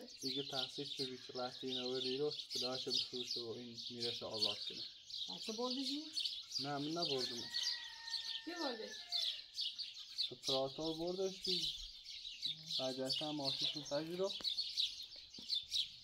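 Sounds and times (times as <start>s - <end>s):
small birds chirping: 0.0s - 16.0s
people talking: 8.5s - 9.0s.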